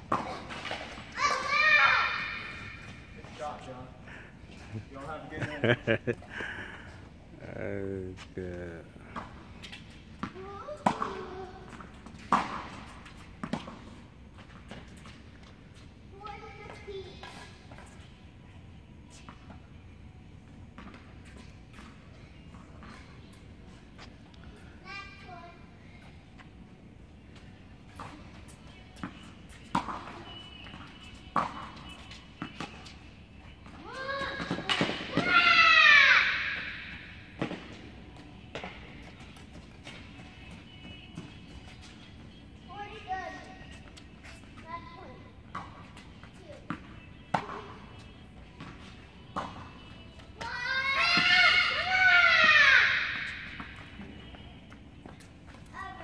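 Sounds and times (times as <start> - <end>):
tennis balls struck and bouncing: 0.0 - 3.4, 9.0 - 15.5, 20.4 - 23.4, 27.3 - 44.7, 45.4 - 55.7.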